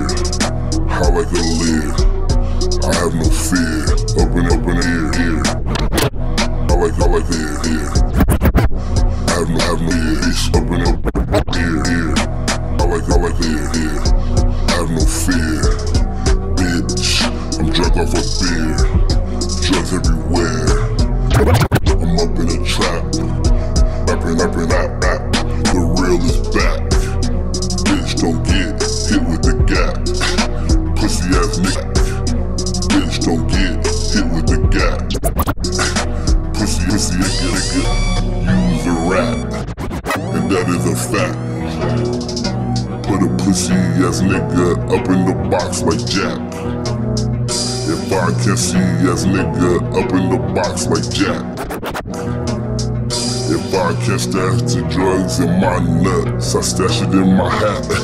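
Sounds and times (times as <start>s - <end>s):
slowed hip hop beat: 0.0s - 55.5s
heavy bass: 0.0s - 58.0s
scratch-like stutters: 2.7s - 12.2s, 16.6s - 23.3s, 32.8s - 37.8s, 38.8s - 41.3s, 50.8s - 52.3s.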